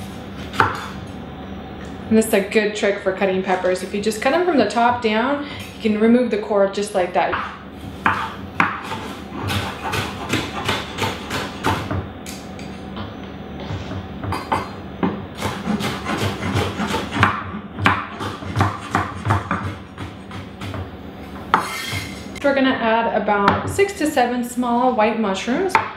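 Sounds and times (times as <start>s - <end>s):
knife chopping on wooden board: 0.4s - 0.9s, 7.3s - 12.0s, 14.2s - 22.1s.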